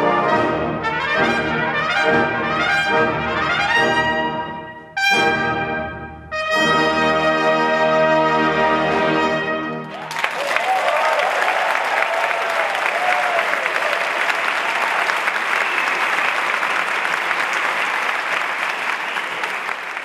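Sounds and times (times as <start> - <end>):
audience applause: 9.9 - 20.0
people cheering: 9.9 - 20.0.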